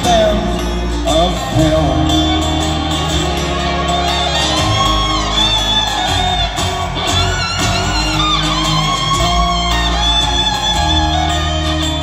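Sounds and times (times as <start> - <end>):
fiddle: 0.0 - 12.0
guitar strumming: 0.0 - 12.0
upright bass: 0.0 - 12.0.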